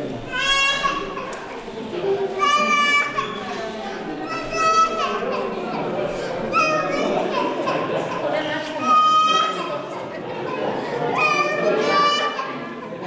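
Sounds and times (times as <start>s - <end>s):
murmur of crowd talking: 0.0s - 13.0s.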